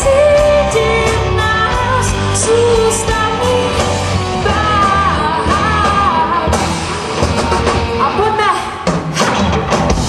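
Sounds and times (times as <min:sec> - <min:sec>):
drum kit: 0:00.0 - 0:10.0
live rock band playing: 0:00.0 - 0:10.0.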